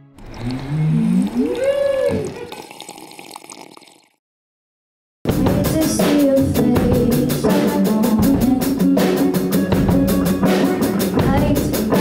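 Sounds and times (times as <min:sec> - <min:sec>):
people slurping through straws: 0:00.1 - 0:04.2.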